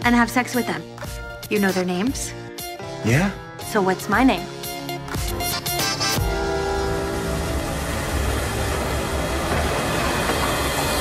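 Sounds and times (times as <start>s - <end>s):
rumbling and clattering noise: 6.6s - 11.0s.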